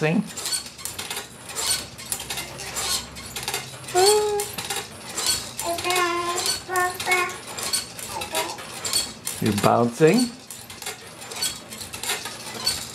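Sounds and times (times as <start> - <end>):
baby bouncer clattering: 0.0 - 12.9.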